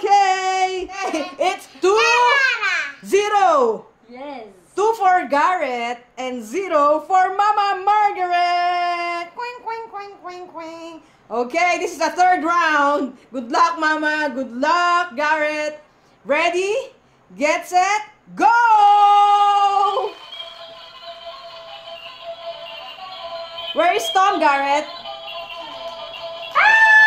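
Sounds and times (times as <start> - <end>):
people talking: 0.0 - 20.2, 23.8 - 25.0
electronic toy tune: 20.1 - 26.6.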